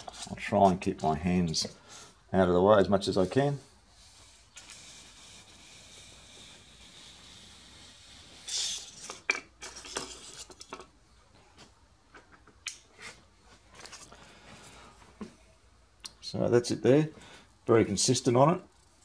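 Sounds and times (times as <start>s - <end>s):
foam rubbing hiss: 3.0s - 9.1s.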